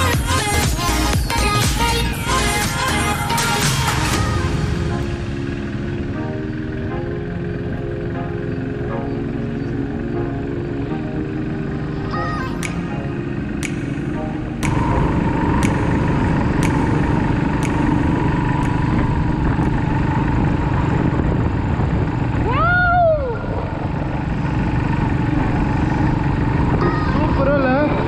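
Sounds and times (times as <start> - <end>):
motorcycle engine rumble: 0.0 - 28.0
wavering pitched sounds: 0.0 - 28.0
wind rushing over microphone: 14.7 - 28.0.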